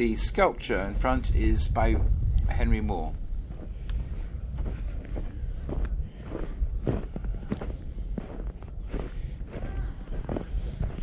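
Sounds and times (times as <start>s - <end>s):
footsteps crunching through snow: 3.4s - 11.0s.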